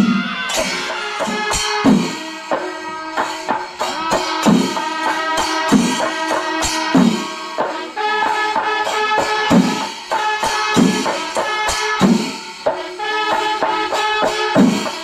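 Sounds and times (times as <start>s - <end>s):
massed drums playing: 0.0s - 12.9s
hand cymbals ringing: 0.0s - 15.0s.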